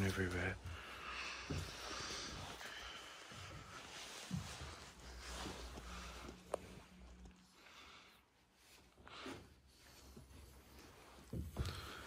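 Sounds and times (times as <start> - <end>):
footsteps shuffling on wooden floor: 0.0 - 7.3, 8.9 - 12.0.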